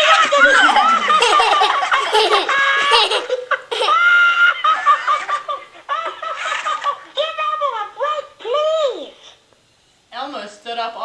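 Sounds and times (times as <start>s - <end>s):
child laughing and squealing: 0.0s - 6.9s.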